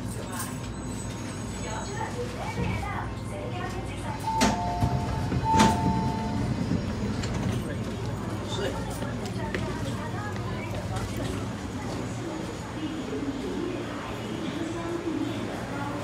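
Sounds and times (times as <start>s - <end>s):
passengers' voices: 0.0s - 16.0s
low carriage hum: 2.8s - 13.2s
train door clicks: 4.3s - 7.6s.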